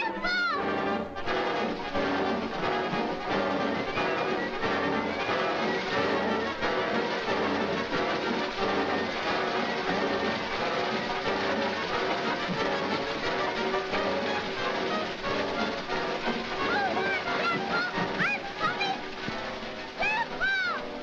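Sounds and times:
brass instruments: 0.0 - 21.0
orchestral cartoon music: 0.0 - 21.0.

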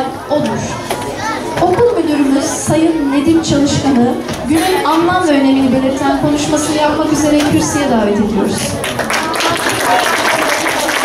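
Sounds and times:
girl announcing into a microphone: 0.0 - 8.8.

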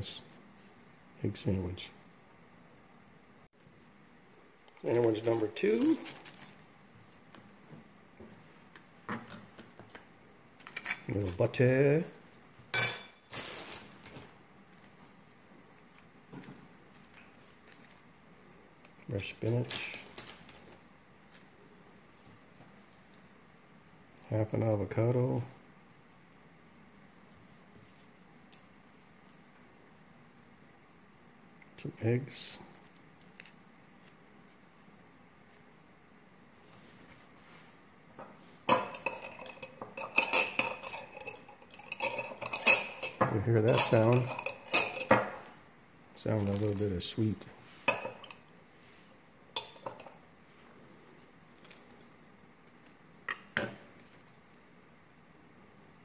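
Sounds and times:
soft rustle of food handling: 0.2 - 2.1, 3.6 - 12.6, 13.2 - 30.1, 32.5 - 38.6, 45.4 - 56.0
metal utensil clattering on kitchenware: 38.7 - 45.4.

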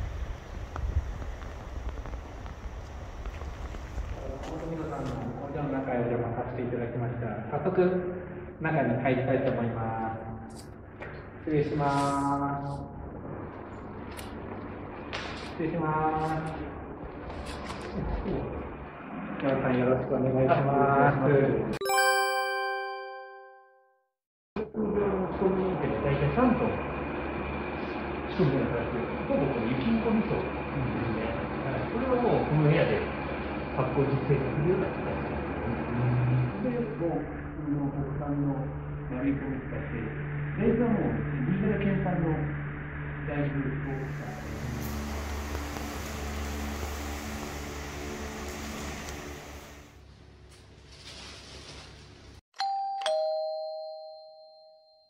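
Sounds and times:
fan humming with hiss: 0.0 - 18.8, 25.4 - 52.3
bell-like chime ringing: 21.8 - 24.0, 52.6 - 55.0.

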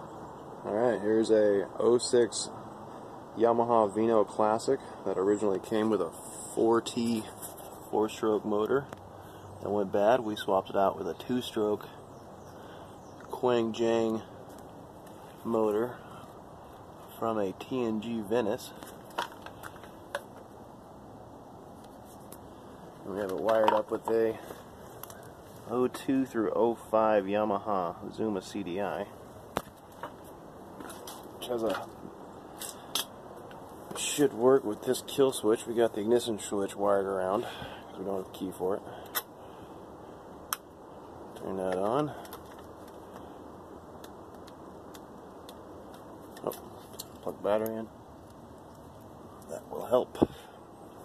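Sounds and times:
faint room noise hiss: 0.0 - 51.0.

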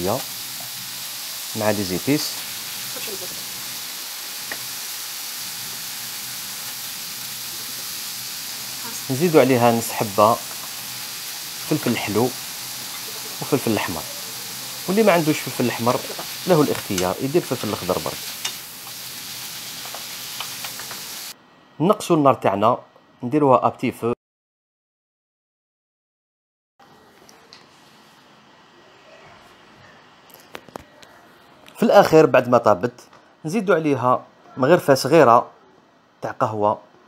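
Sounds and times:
liver sizzling in pan: 0.0 - 21.4.

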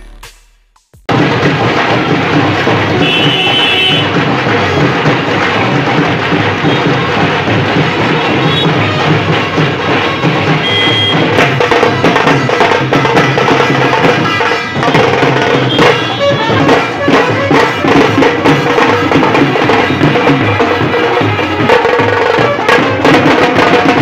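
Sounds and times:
loud busy drumming: 0.0 - 24.0
procession band playing: 1.1 - 24.0.

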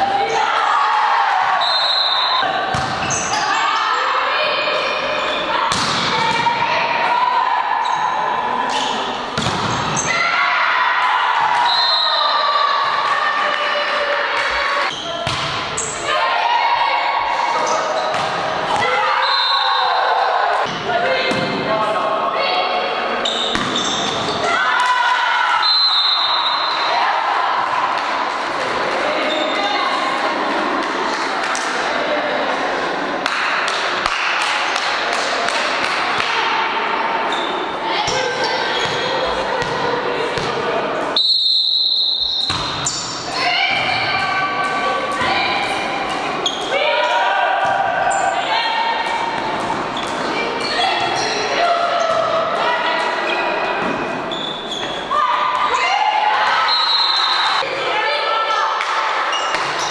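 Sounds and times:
players calling and shouting: 0.0 - 59.9.

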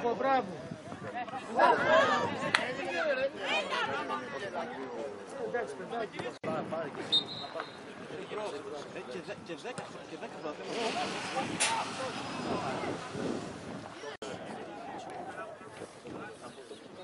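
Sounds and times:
voices talking: 0.0 - 17.0
referee's whistle blast: 7.1 - 7.8.

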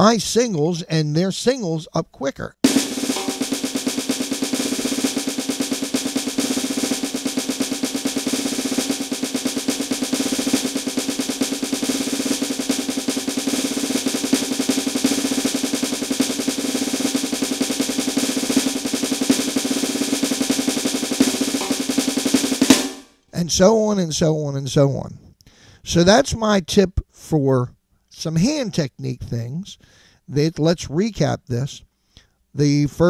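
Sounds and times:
electronic snare pad drum roll: 2.6 - 23.2.

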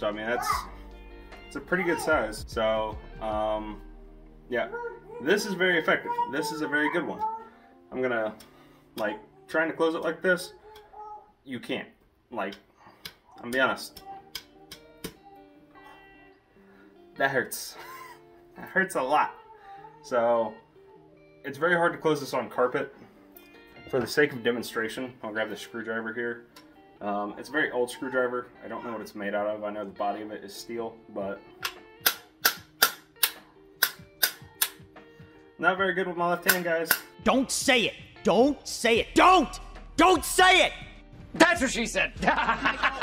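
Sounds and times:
screwdriver striking metal baton: 31.6 - 34.8.

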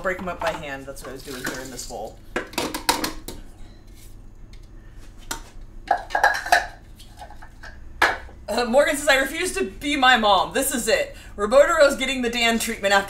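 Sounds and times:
bowls and utensils clinking: 5.9 - 8.3.

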